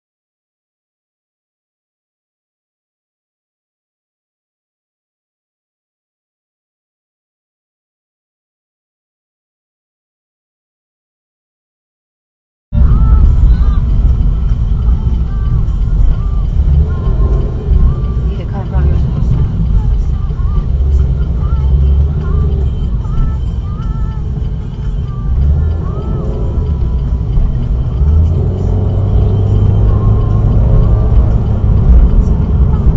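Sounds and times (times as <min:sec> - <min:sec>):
car engine and road rumble: 0:12.8 - 0:32.9.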